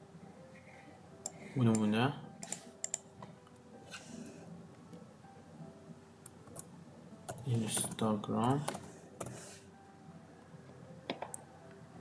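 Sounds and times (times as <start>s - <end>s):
keyboard and mouse clicks: 1.2s - 3.1s.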